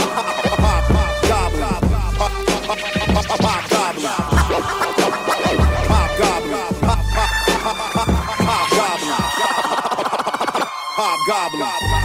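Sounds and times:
turntable scratching: 0.0s - 10.8s
hip hop beat with bass: 0.0s - 12.0s.

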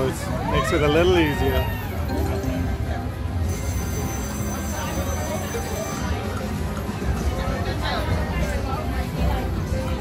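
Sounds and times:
background chatter: 0.0s - 10.0s
slot machine music: 2.0s - 8.0s.

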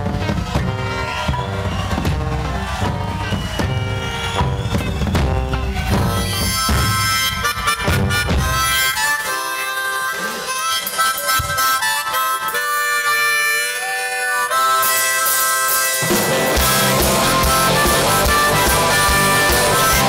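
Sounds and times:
bass: 0.0s - 13.8s, 14.4s - 20.0s
blues harmonica: 0.0s - 20.0s
drums: 0.0s - 20.0s.

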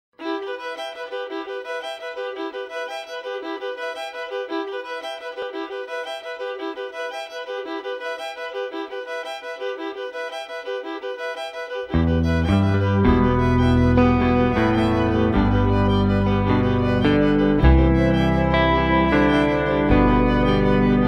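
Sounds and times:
violin playing quick notes: 0.2s - 21.0s.

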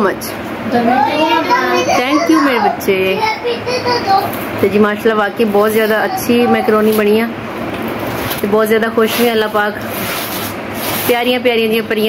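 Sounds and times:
woman's voice: 0.0s - 3.3s, 4.6s - 7.4s, 8.4s - 9.9s, 11.0s - 12.0s.

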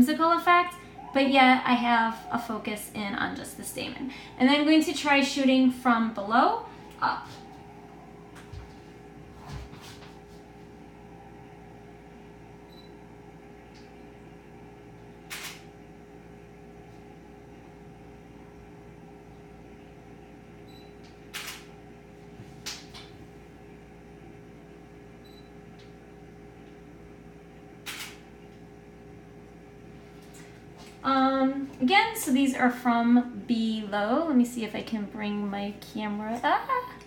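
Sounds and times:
low room hum: 0.0s - 37.0s
camera shutter clicks: 27.9s - 28.2s.

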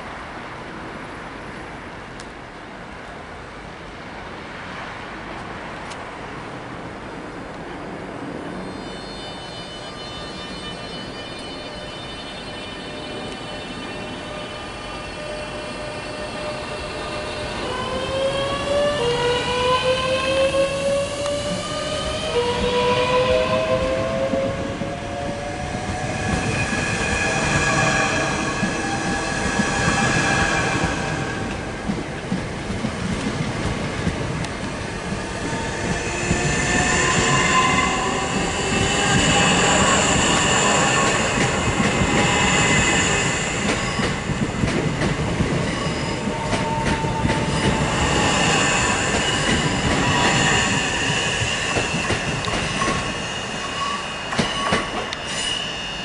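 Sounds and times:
wheel squeal: 45.6s - 56.0s.

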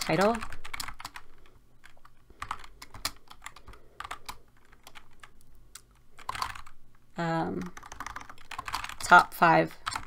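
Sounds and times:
computer keyboard typing: 0.0s - 6.8s, 7.5s - 10.0s.

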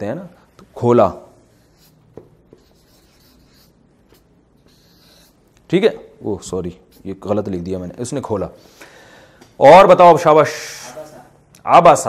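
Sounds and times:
marker scratching on paper: 1.3s - 5.5s, 6.7s - 7.5s.

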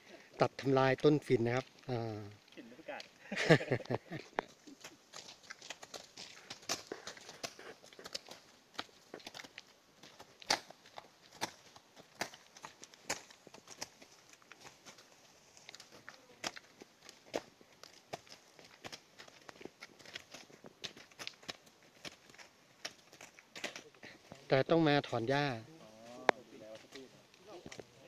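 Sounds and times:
clicks and rustles of people walking: 0.0s - 28.0s.

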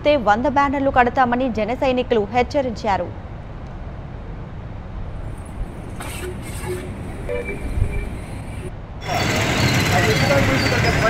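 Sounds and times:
low rumble of vehicles: 0.0s - 11.0s.

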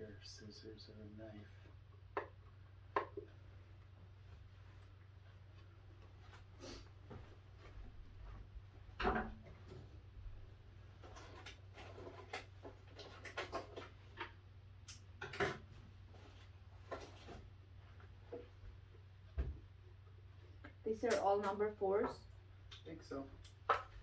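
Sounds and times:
steady low hum: 0.0s - 11.1s.

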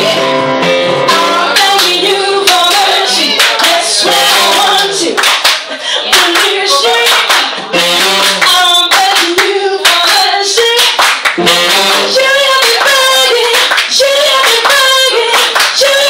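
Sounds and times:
woman singing: 1.1s - 5.4s, 6.0s - 16.0s
hand claps: 5.2s - 12.0s, 12.6s - 16.0s
jazz soul band playing: 7.6s - 8.9s, 11.4s - 12.5s.

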